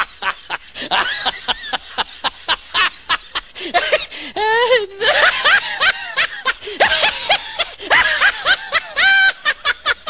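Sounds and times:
high-pitched laughter: 0.0 - 10.0.

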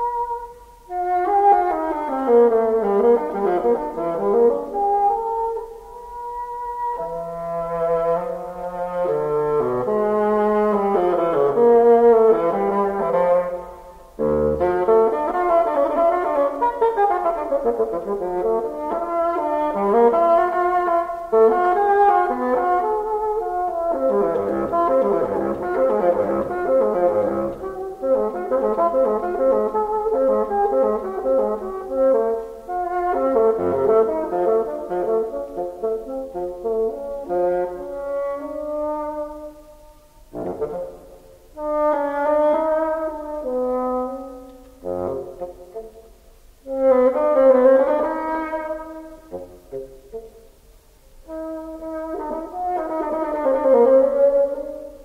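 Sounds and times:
bassoon playing fast runs: 6.3 - 39.5, 51.3 - 55.0.

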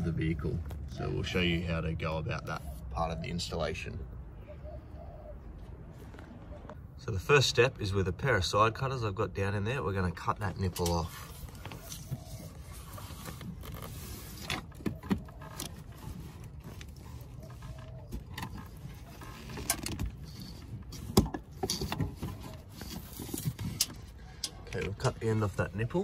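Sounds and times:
rustling of plastic conduit: 10.5 - 26.0.

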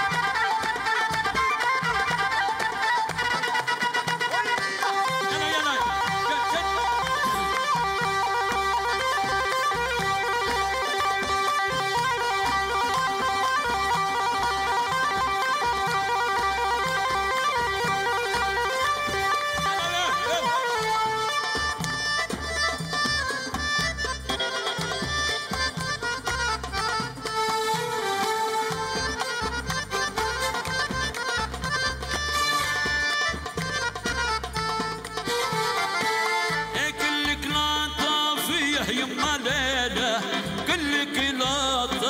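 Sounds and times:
accordion melody: 0.0 - 42.0
keyboard melody: 0.0 - 42.0.

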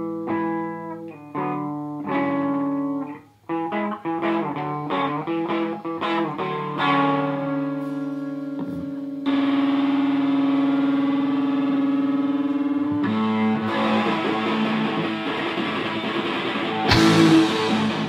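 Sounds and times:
distorted electric guitar: 0.0 - 18.0
hard rock band playing: 12.9 - 18.0.

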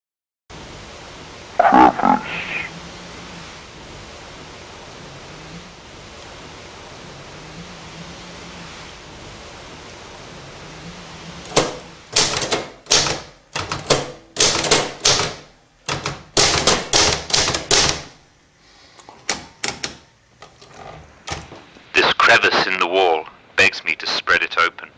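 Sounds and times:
steady hiss: 0.5 - 14.4, 17.3 - 24.9
short voice-like sound: 1.6 - 2.7.

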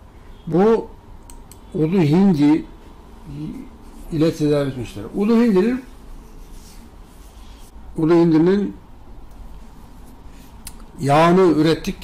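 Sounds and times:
low room hum: 0.0 - 12.0
hands rubbing skin and clothing: 6.2 - 7.7.

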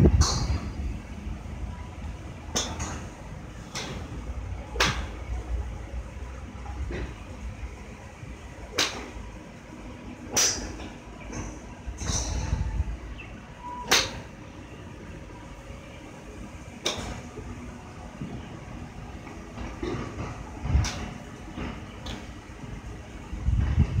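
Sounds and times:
low rumbles: 0.0 - 16.0, 16.6 - 24.0
golf clubs striking balls: 0.1 - 0.8, 2.5 - 5.4, 8.6 - 9.3, 10.2 - 12.7, 13.7 - 14.4, 16.8 - 17.4, 19.2 - 22.4.

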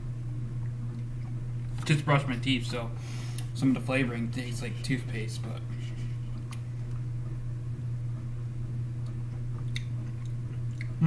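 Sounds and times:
steady low hum: 0.0 - 11.0
wet mouth clicks: 9.6 - 11.0.

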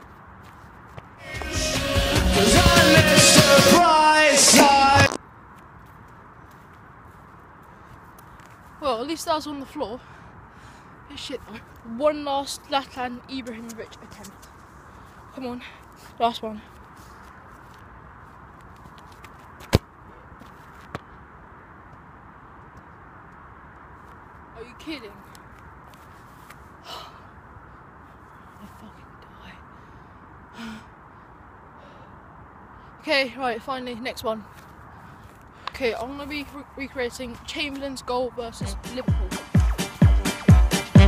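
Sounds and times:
faint outdoor background hiss: 0.0 - 41.0
music track: 1.2 - 5.2, 38.6 - 41.0.

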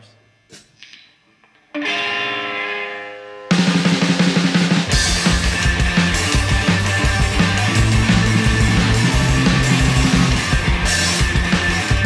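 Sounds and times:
electric guitar chord ringing: 1.7 - 12.0.

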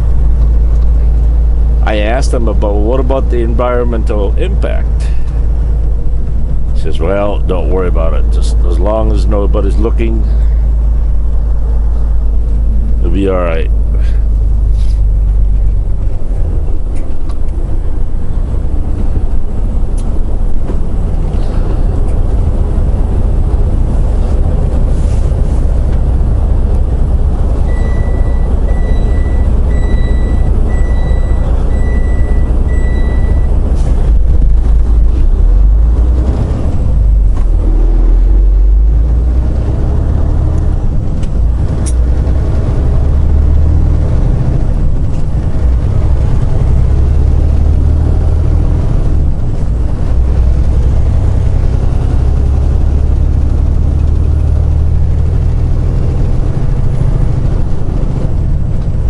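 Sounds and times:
truck diesel engine rumble: 0.0 - 59.0
high electronic beeps: 27.7 - 33.6.

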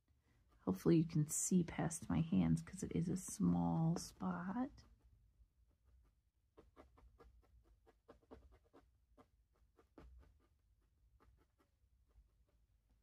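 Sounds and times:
felting needle poking wool: 0.1 - 13.0.

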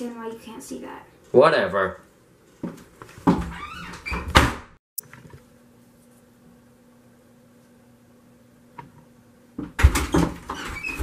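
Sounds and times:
wooden door shutting: 3.2 - 4.8, 9.6 - 11.0
door squeak: 3.3 - 4.7, 9.8 - 11.0.

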